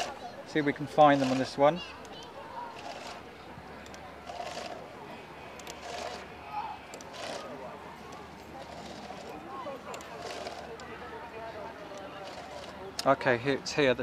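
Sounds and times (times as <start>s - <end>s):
chainsaw chain rattling scrape: 0.0s - 0.2s, 0.8s - 4.9s, 5.6s - 6.3s, 6.9s - 10.9s, 11.8s - 12.8s
faint voices: 0.0s - 14.0s.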